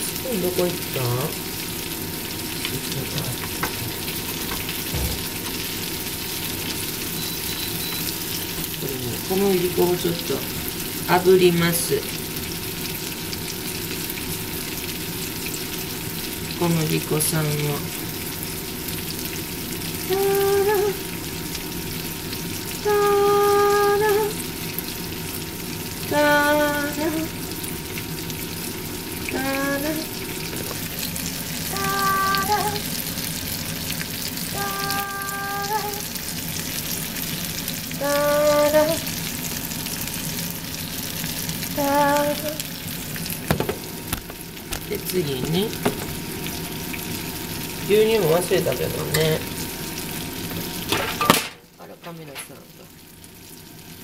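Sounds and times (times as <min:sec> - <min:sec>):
food sizzling in a frying pan: 0:00.0 - 0:54.0
person singing short held notes: 0:31.7 - 0:32.8, 0:34.6 - 0:36.0.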